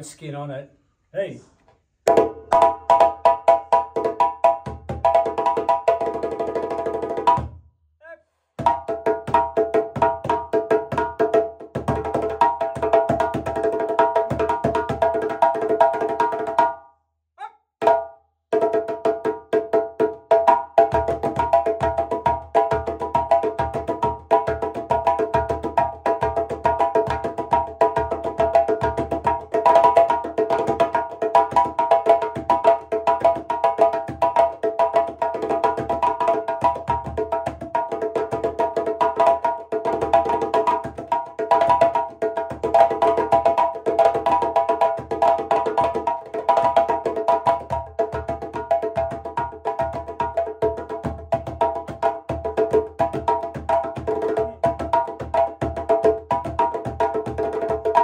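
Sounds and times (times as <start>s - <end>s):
djembes played by hand: 2.0s - 7.6s, 8.6s - 16.8s, 17.8s - 58.0s.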